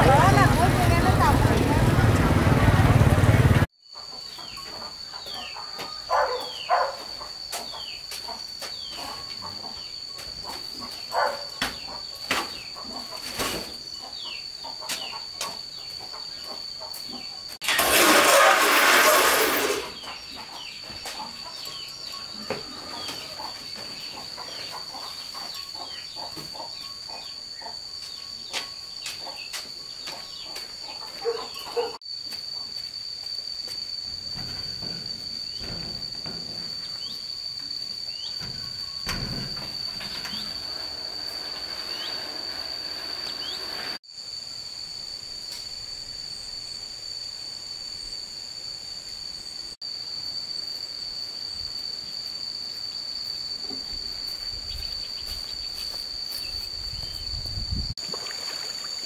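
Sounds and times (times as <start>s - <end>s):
high-pitched insect drone: 13.8s - 59.0s
loud burst of noise: 17.6s - 20.0s
bird chirps: 43.2s - 43.9s.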